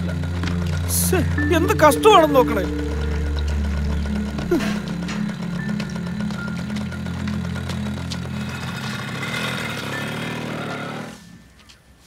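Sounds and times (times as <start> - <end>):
small motorcycle engine running: 0.0 - 11.5.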